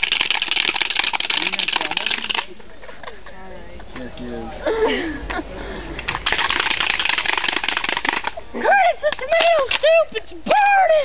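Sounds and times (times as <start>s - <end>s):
fast rattling: 0.0s - 2.5s, 6.1s - 8.4s.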